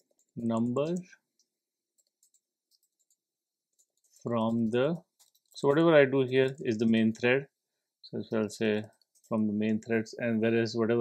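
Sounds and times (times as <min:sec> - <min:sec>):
typing on computer keyboard: 0:00.0 - 0:07.3.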